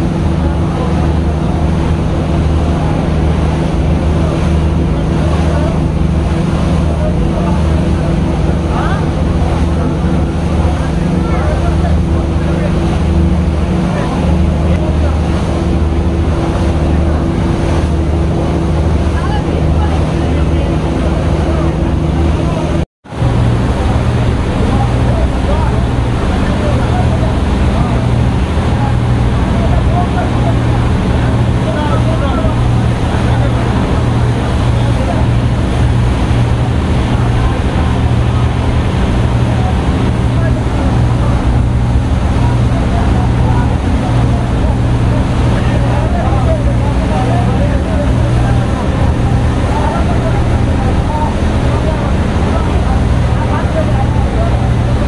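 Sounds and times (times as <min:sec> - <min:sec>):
boat engines droning: 0:00.0 - 0:55.0
storm wind: 0:00.0 - 0:55.0
waves breaking against hull: 0:00.0 - 0:55.0.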